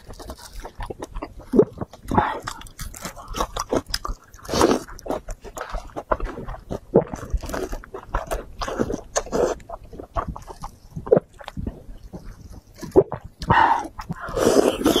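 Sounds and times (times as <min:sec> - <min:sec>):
wet chewing and lip-smacking: 0:00.0 - 0:15.0.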